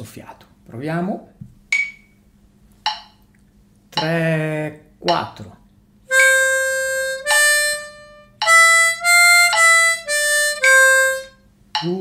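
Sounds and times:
harmonica single notes: 0:06.1 - 0:11.5.

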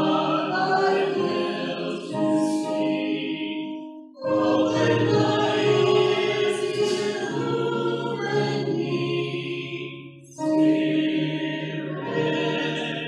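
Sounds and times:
congregation singing a hymn: 0:00.0 - 0:13.0
piano accompaniment: 0:00.0 - 0:13.0.

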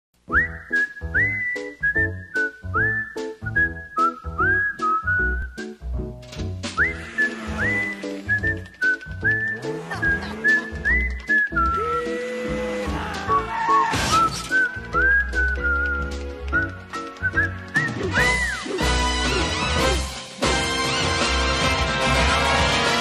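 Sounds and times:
whistled melody: 0:00.3 - 0:05.9, 0:06.6 - 0:12.2, 0:13.3 - 0:20.0
bass line: 0:00.4 - 0:13.5.

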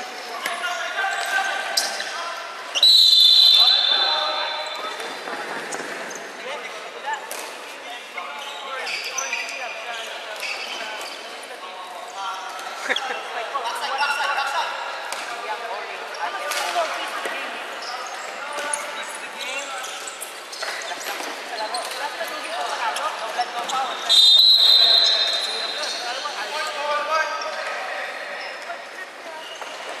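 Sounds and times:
sneaker squeaks: 0:00.1 - 0:14.6, 0:16.1 - 0:30.0
referee whistle blast: 0:02.7 - 0:04.6, 0:24.1 - 0:25.6.

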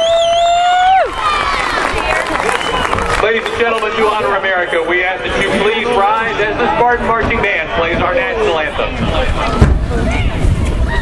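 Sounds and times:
people talking: 0:03.2 - 0:10.4.

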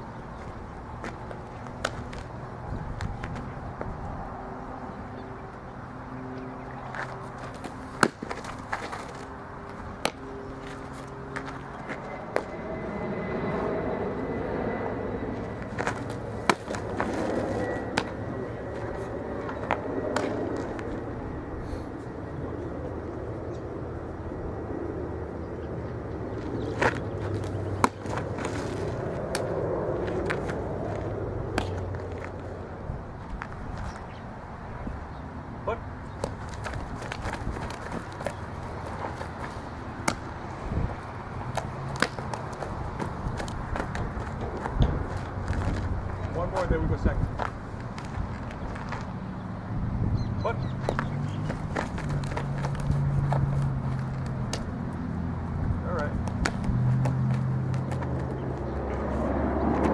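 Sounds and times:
outdoor background noise: 0:00.0 - 0:59.9
softballs smacking into mitts: 0:01.0 - 0:02.3, 0:06.9 - 0:09.3, 0:10.0 - 0:10.8, 0:15.6 - 0:18.2, 0:19.5 - 0:21.0, 0:26.8 - 0:32.4, 0:36.2 - 0:40.3, 0:41.5 - 0:45.9, 0:50.8 - 0:54.8, 0:56.2 - 0:58.4.

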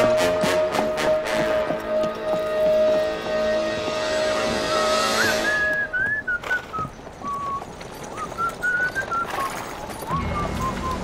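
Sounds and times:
person whistling a slow melody: 0:04.6 - 0:07.6, 0:08.2 - 0:11.0.

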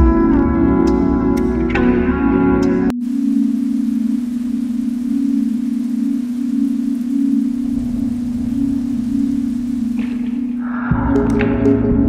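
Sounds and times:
steady low electronic tone: 0:00.0 - 0:12.0
faint hiss: 0:02.9 - 0:11.4.

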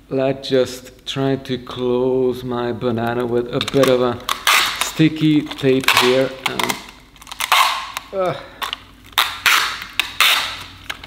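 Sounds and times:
sticky tape pulled off roll: 0:03.5 - 0:11.0.

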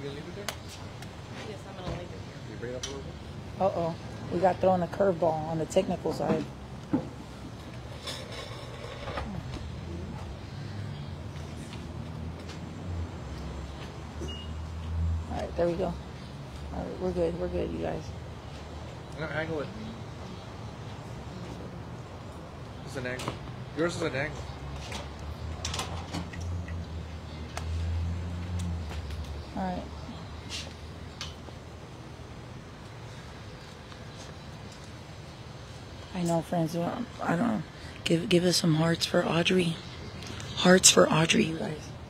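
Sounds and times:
low traffic rumble: 0:00.0 - 0:42.0.

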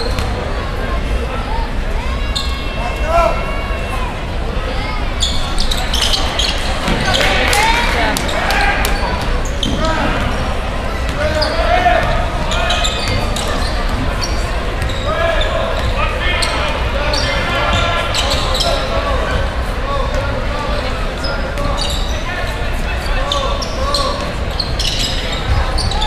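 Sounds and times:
spectators talking and shouting: 0:00.0 - 0:26.0.

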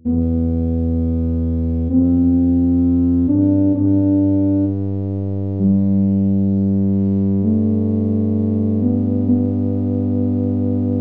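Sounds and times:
synthesized tuba notes: 0:00.0 - 0:11.0.

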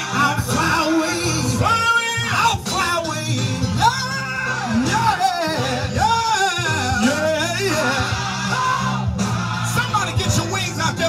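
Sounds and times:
band with steady bass line: 0:00.0 - 0:11.0
person singing gospel: 0:00.0 - 0:11.0.

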